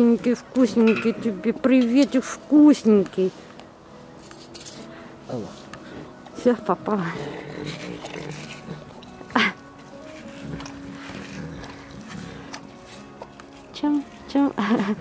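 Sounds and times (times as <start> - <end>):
tiger eating raw meat: 5.5 - 15.0.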